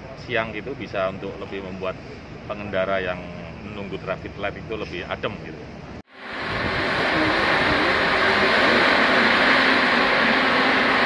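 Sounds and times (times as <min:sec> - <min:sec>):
fan blowing air and water spray: 0:00.0 - 0:11.0
low motor hum: 0:05.5 - 0:11.0.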